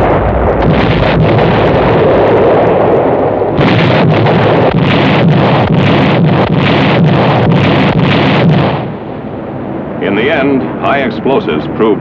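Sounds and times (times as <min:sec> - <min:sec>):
sharp artillery reports: 0:00.0 - 0:09.1
artillery rumble: 0:00.0 - 0:09.2.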